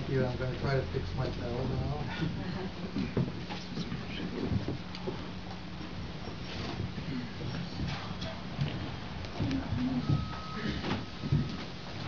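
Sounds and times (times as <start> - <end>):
amplifier hum: 0.0 - 12.0.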